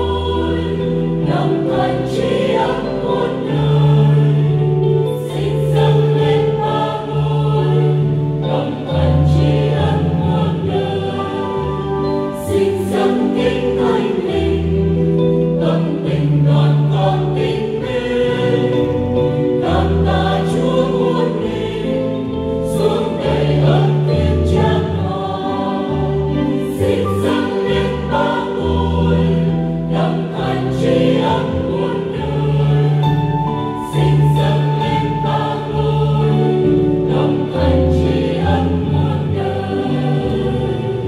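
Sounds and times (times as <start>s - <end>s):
mixed choir singing a hymn: 0.0s - 41.0s.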